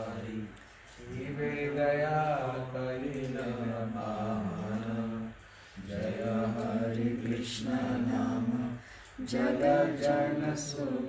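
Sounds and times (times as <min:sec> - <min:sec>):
man chanting devotional song: 0:00.0 - 0:11.0.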